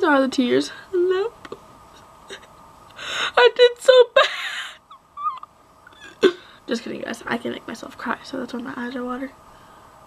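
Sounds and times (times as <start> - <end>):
girl sob-laughing: 4.1 - 6.4.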